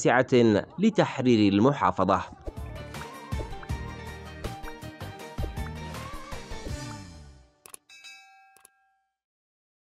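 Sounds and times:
bell-like ding: 0:07.9 - 0:09.2.

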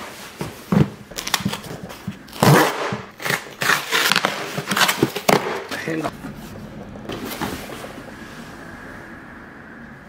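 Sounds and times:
cardboard box ripping open: 0:02.3 - 0:05.5.

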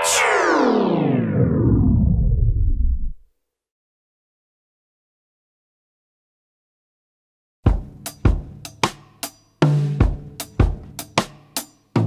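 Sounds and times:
rock drum beat: 0:07.6 - 0:12.0.

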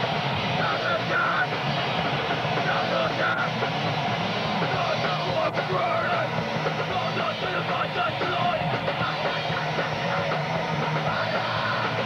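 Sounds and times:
bass guitar: 0:00.0 - 0:12.0
drums: 0:00.0 - 0:12.0
electric guitars: 0:00.0 - 0:12.0.

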